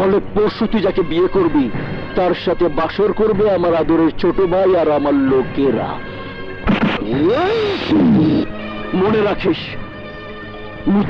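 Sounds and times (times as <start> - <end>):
background music: 0.0 - 11.0
man speaking: 7.1 - 9.8.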